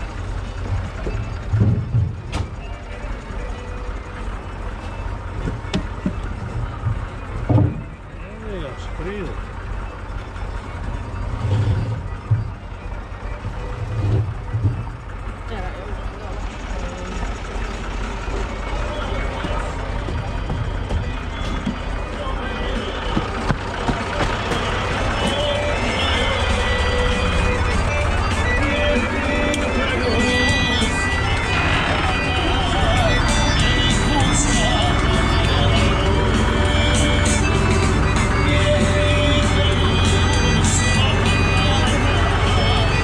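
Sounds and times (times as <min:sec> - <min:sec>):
tractor diesel engine idling: 0:00.0 - 0:43.0
logs thumping on trailer: 0:00.6 - 0:02.7, 0:05.3 - 0:08.1, 0:23.0 - 0:25.6.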